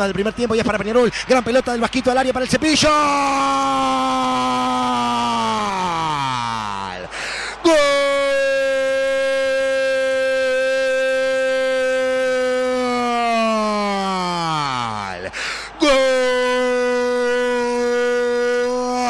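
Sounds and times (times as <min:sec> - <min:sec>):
commentator shouting goal: 0:00.0 - 0:19.0
quick breath: 0:07.1 - 0:07.6, 0:15.3 - 0:15.8.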